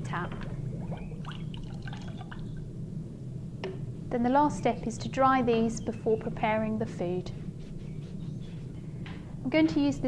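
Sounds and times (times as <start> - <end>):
water dripping and splashing: 0.4 - 2.5.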